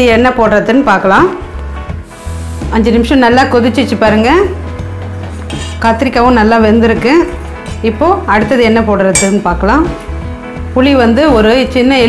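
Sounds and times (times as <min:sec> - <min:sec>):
background music with bass: 0:00.0 - 0:12.0
ladle clinking on metal pot: 0:09.1 - 0:09.6.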